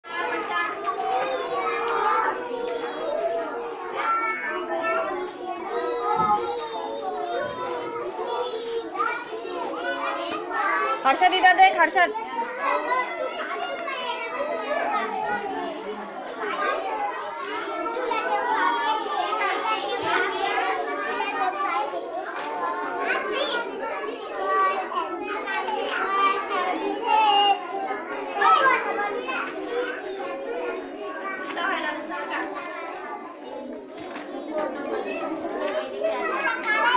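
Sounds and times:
children babbling: 0.0s - 36.9s.

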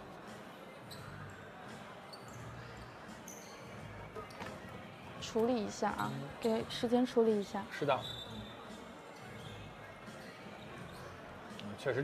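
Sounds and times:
shoe squeaks: 0.8s - 4.5s, 6.1s - 6.7s, 7.7s - 11.2s.

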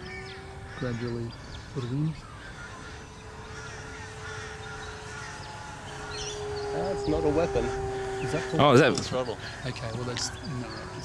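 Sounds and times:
crows cawing: 0.0s - 11.0s
noisy outdoor background: 0.0s - 11.0s.

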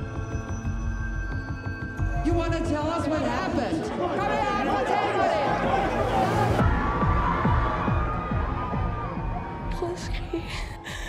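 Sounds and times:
crowd chatter: 3.8s - 10.0s.

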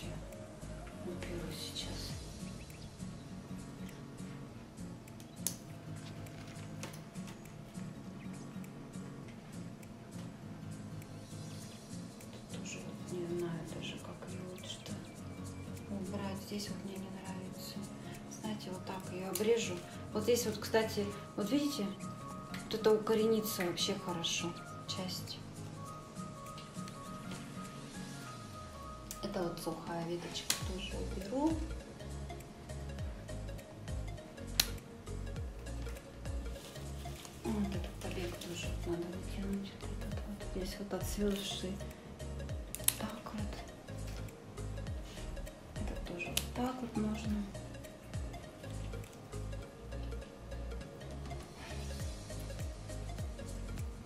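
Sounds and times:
slow beat background music: 0.0s - 54.0s
scissors snipping stems: 5.0s - 7.7s, 19.2s - 19.8s, 42.7s - 44.4s, 46.3s - 46.8s, 48.7s - 49.3s.

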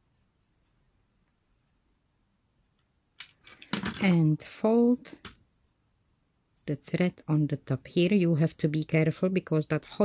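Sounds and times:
woman speaking: 4.0s - 5.3s, 6.6s - 10.0s.

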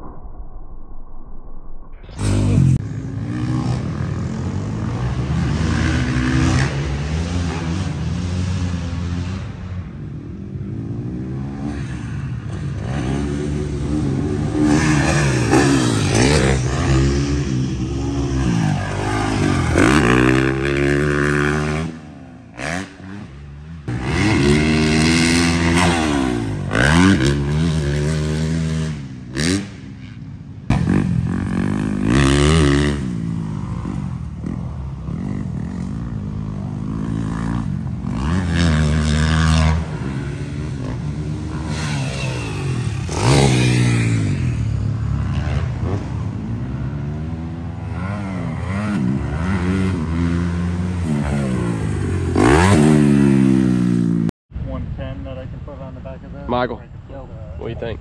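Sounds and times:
dirt bike engines revving: 2.2s - 54.3s.

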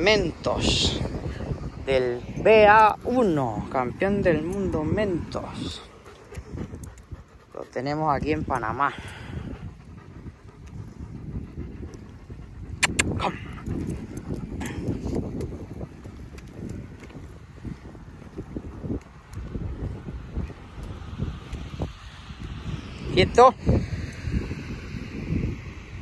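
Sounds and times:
wind rumbling on microphone: 0.0s - 26.0s
footsteps on pavement: 13.5s - 22.6s.

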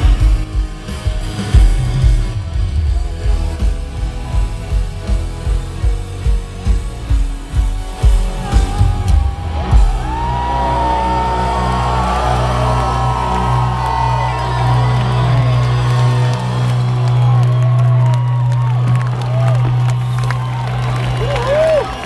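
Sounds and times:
rock band holding low chord: 0.0s - 22.0s
crowd whooping and screaming: 7.4s - 22.0s.

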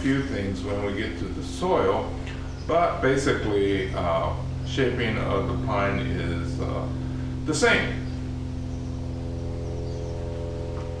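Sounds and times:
steady hum of held tones: 0.0s - 11.0s.

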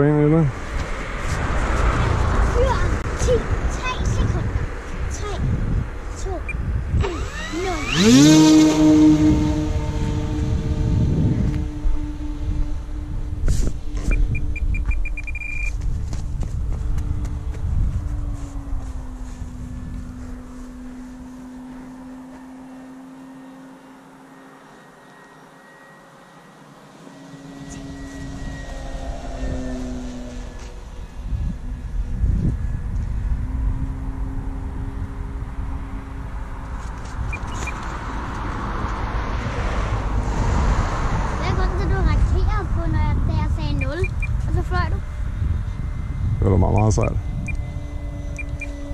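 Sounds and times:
model plane electric motor whine: 7.0s - 15.4s, 17.5s - 38.5s, 44.7s - 48.9s.

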